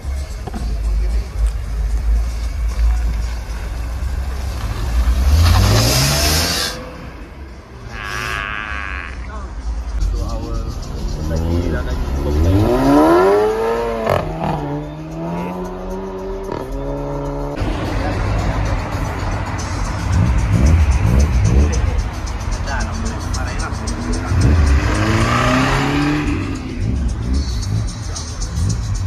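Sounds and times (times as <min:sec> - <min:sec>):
car engine revving: 0:00.2 - 0:29.0.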